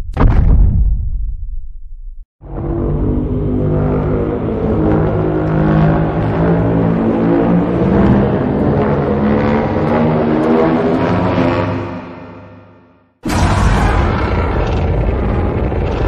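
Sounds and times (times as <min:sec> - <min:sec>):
low rumble: 0:13.2 - 0:16.0
monster roar: 0:13.3 - 0:16.0.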